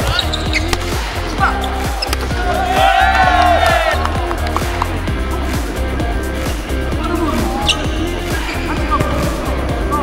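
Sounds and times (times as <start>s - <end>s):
volleyballs struck and bouncing: 0.0s - 1.1s, 1.9s - 2.5s
sneakers squeaking on court floor: 0.0s - 2.4s, 7.6s - 9.5s
background music: 0.0s - 10.0s.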